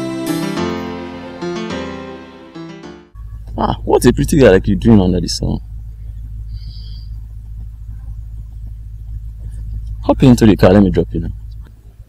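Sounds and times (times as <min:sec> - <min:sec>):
steady low hum and rumble: 0:03.2 - 0:12.0.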